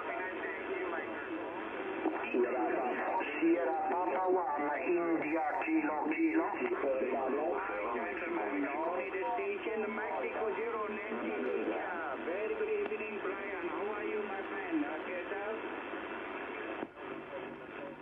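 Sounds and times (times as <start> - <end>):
radio hiss: 0.0 - 18.0
narrow-band radio speech: 2.0 - 15.6.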